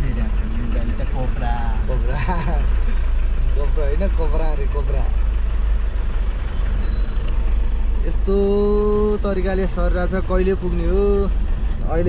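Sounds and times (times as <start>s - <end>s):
vehicle engine and tyres rumbling: 0.0s - 12.0s
voices and laughter: 1.9s - 2.8s.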